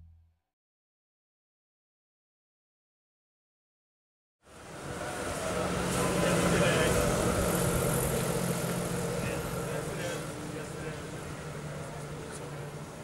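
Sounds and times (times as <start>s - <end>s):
traffic hum: 4.5s - 13.0s
faint indistinct voices: 8.2s - 13.0s.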